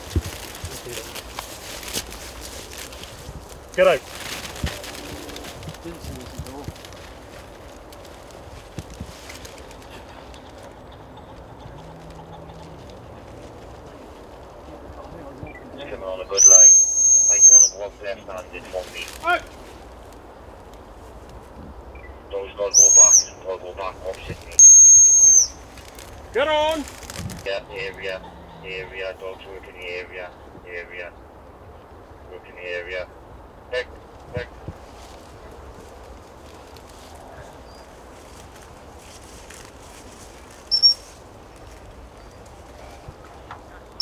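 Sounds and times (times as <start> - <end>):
quiet voices: 0.0 - 2.5, 3.7 - 24.7, 26.3 - 31.3, 32.2 - 40.5
high-pitched whistle blasts: 16.4 - 17.8, 24.6 - 25.6, 40.7 - 41.0.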